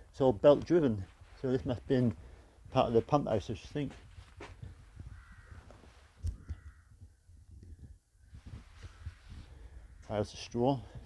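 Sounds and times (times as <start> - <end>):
bird calling faintly: 4.3 - 10.2.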